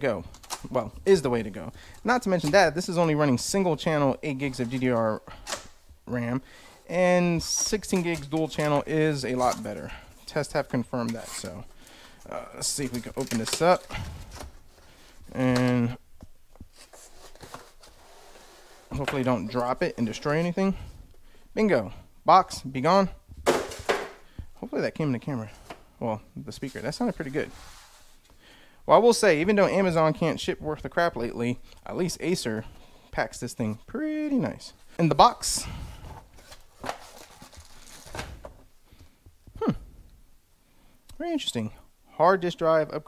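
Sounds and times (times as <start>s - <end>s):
plastic bag rustling: 6.6s - 15.9s, 26.5s - 28.3s, 35.6s - 38.7s.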